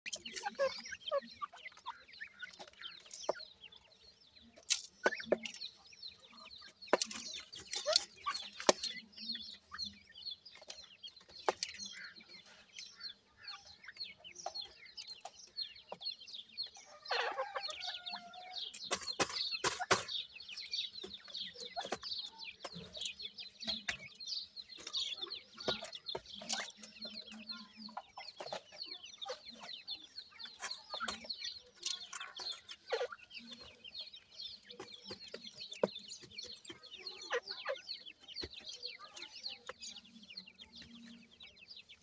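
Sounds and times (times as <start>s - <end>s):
chicks peeping: 0.0s - 42.0s.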